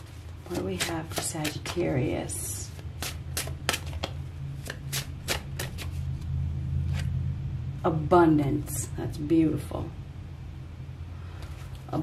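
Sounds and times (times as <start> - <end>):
cards shuffled by hand: 0.0 - 1.8, 2.7 - 6.3
low steady hum: 0.0 - 12.0.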